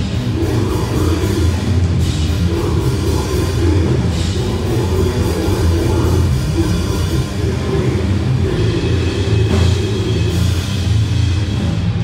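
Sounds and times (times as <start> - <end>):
drum kit pounding: 0.0 - 12.0
heavily distorted guitars: 0.0 - 12.0.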